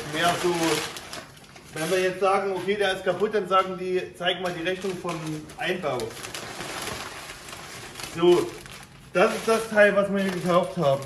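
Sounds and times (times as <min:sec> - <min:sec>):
packing paper rustling: 0:00.0 - 0:03.6, 0:04.3 - 0:11.0.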